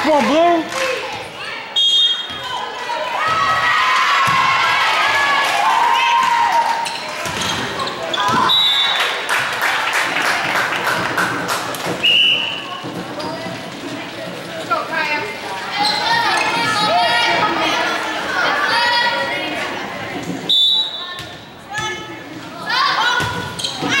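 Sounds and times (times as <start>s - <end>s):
sneakers squeaking: 1.1s - 3.5s, 5.9s - 9.1s, 11.9s - 18.0s, 18.6s - 24.0s
referee's whistle: 1.8s - 2.4s, 8.3s - 9.1s, 12.0s - 12.7s, 20.5s - 21.2s
volleyball struck and bouncing: 7.2s - 8.5s.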